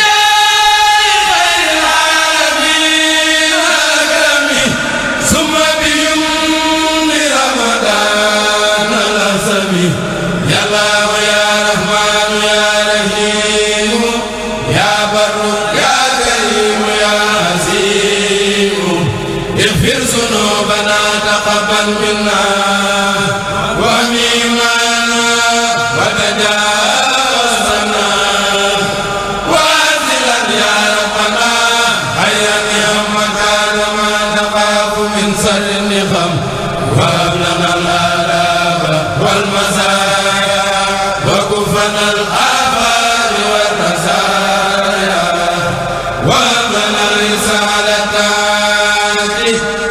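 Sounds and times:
group chanting religious poems: 0.0s - 49.9s.

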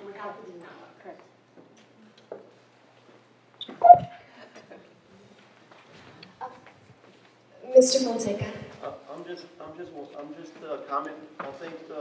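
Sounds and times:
microphone knock with ringing tone: 3.6s - 4.2s.

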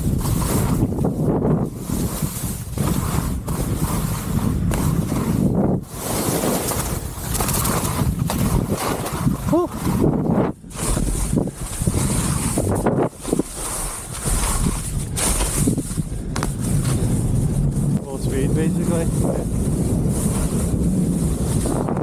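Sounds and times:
skis scraping through slush: 0.0s - 22.0s
wind buffeting microphone: 0.0s - 22.0s.

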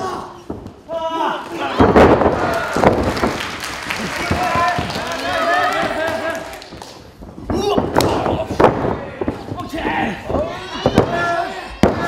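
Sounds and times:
voices shouting in a hall: 0.0s - 3.1s, 4.0s - 6.8s, 7.4s - 12.0s.

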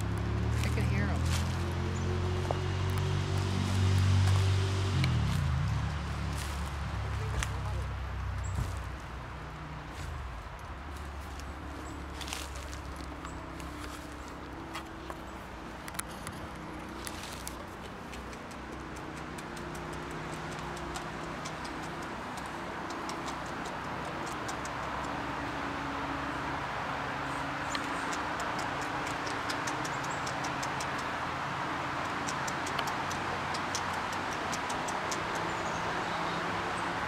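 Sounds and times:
low hum: 0.0s - 34.0s
beaver gnawing a branch: 0.0s - 36.2s.

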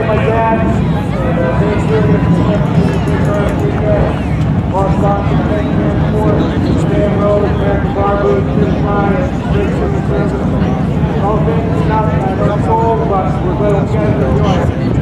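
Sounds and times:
indistinct voices talking: 0.0s - 15.0s
low rumble: 0.0s - 15.0s.

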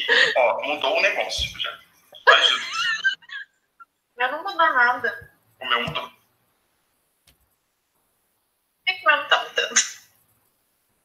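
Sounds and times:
person speaking: 0.0s - 2.6s, 4.2s - 6.2s.

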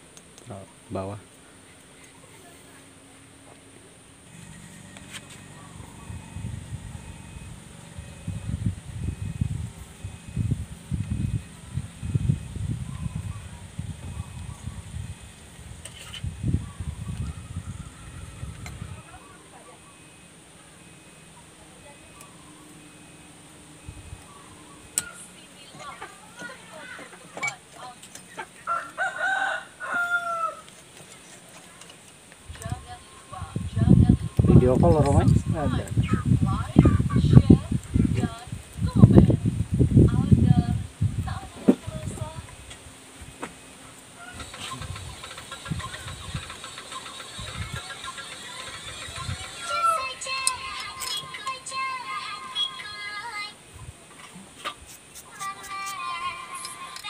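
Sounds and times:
rooster crowing: 16.6s - 20.1s, 28.6s - 30.7s, 44.2s - 45.2s, 48.4s - 50.5s.

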